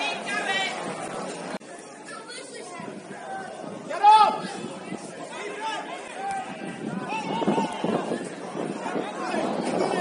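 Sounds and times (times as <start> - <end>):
crowd background noise: 0.0 - 10.0
voices shouting and chattering: 0.0 - 10.0.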